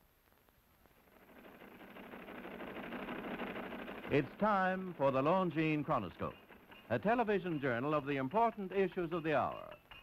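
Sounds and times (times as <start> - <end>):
machine clattering rapidly: 0.9 - 10.0.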